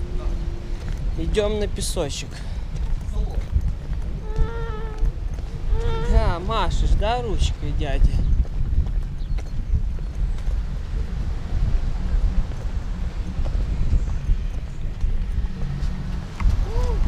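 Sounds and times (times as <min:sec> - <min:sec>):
stroller wheels rolling on pavement: 0:00.0 - 0:17.0.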